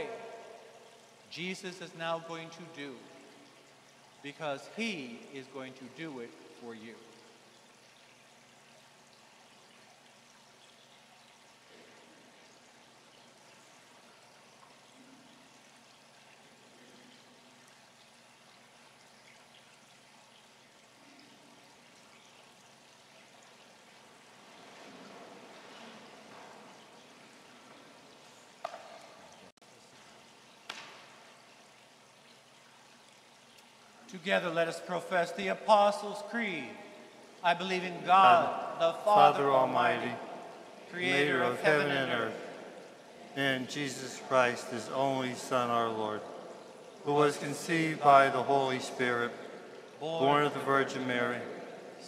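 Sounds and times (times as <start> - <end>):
steady hiss: 0.0 - 7.5, 33.5 - 51.4.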